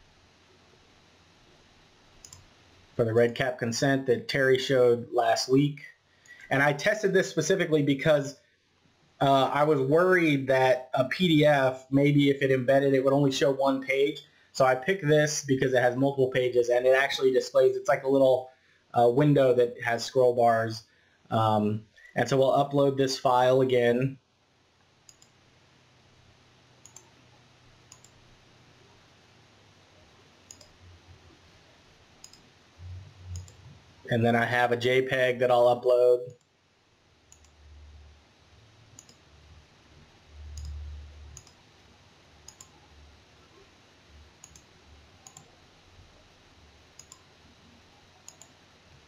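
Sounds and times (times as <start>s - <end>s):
faint background hiss: 0.0s - 49.0s
computer mouse clicks: 2.2s - 2.5s, 25.1s - 25.4s, 26.8s - 27.2s, 27.9s - 28.2s, 30.5s - 30.8s, 32.2s - 32.5s, 33.3s - 33.7s, 37.3s - 37.6s, 38.9s - 39.3s, 40.5s - 41.6s, 42.4s - 42.8s, 44.4s - 45.6s, 47.0s - 47.3s, 48.2s - 48.6s
low hum: 24.5s - 36.4s, 37.0s - 49.0s.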